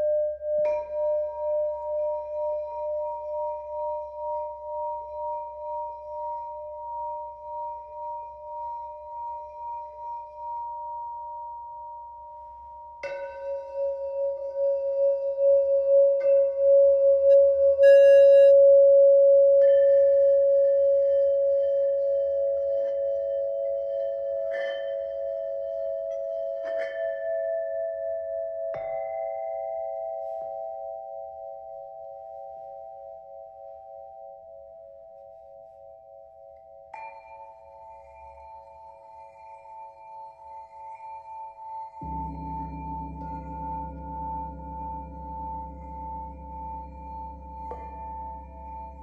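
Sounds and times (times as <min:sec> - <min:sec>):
singing bowls ringing: 0:00.0 - 0:49.0
mallet rubbing bowl rim: 0:36.9 - 0:49.0.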